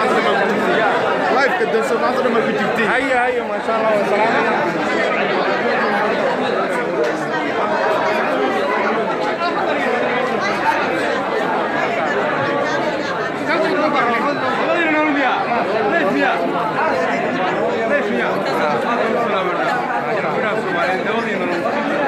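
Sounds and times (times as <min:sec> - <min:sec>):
crowd chatter: 0:00.0 - 0:22.0.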